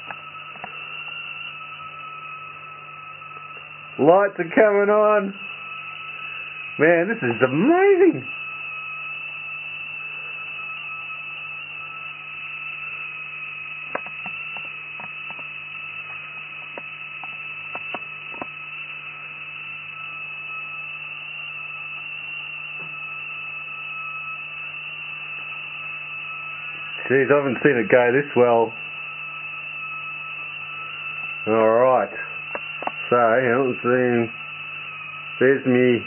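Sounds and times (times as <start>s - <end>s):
high-pitched spark-gap whine: 0.0s - 36.0s
low hum: 0.0s - 36.0s
sharp clicks: 13.9s - 18.6s, 32.5s - 33.0s.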